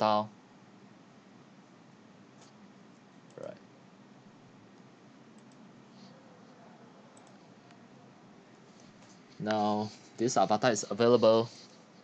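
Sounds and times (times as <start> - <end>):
computer mouse clicks: 4.8 - 5.7, 7.2 - 7.8.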